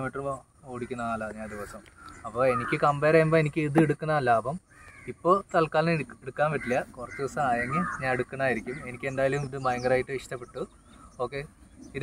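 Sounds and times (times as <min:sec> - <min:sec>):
man speaking: 0:00.0 - 0:04.6
crow cawing faintly: 0:00.6 - 0:03.5, 0:04.6 - 0:09.5.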